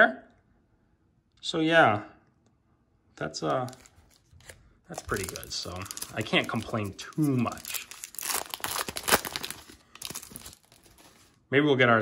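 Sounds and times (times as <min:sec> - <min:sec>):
foil wrapper tearing and crinkling: 0:03.7 - 0:11.4.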